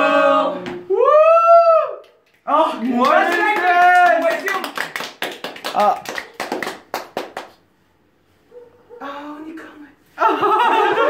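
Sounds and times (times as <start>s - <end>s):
sharp hand claps: 2.0s - 7.6s.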